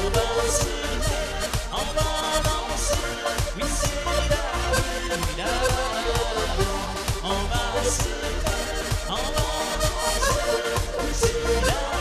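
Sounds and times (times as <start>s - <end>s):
button accordion melody: 0.0s - 12.0s
dance backing track: 0.0s - 12.0s.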